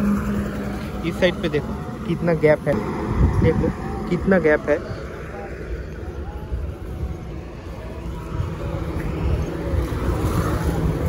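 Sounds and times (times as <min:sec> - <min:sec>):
low uneven rumbling: 0:00.0 - 0:11.0.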